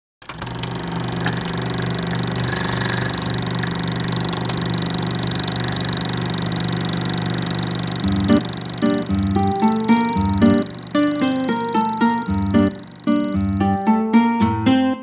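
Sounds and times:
film projector running: 0.2 - 14.6.

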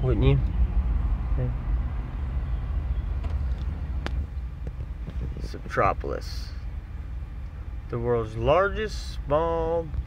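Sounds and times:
road and engine rumble in cabin: 0.0 - 10.0.

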